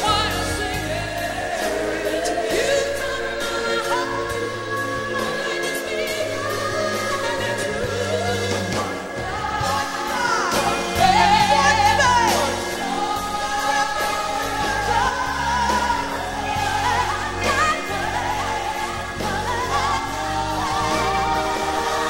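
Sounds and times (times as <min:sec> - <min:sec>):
band playing: 0:00.0 - 0:22.0
vocal group singing in harmony: 0:00.0 - 0:22.0
woman singing with vibrato: 0:00.0 - 0:22.0.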